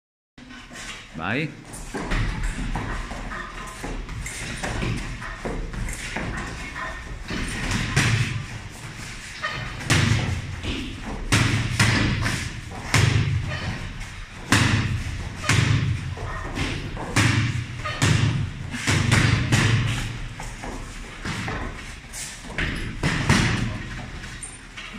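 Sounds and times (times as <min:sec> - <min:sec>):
kicks and punches thudding on bags: 0:07.2 - 0:08.6, 0:09.6 - 0:21.8, 0:22.4 - 0:24.3.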